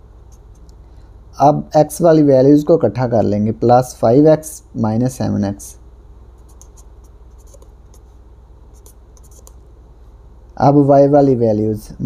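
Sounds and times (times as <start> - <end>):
marker scratching on paper: 6.4 - 9.6.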